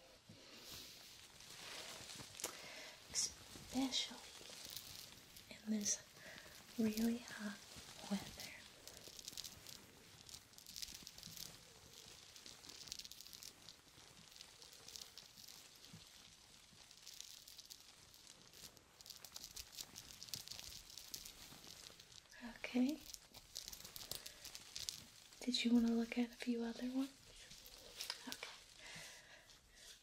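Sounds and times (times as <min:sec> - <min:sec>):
fingertips rustling on lace fabric: 0:00.0 - 0:30.0.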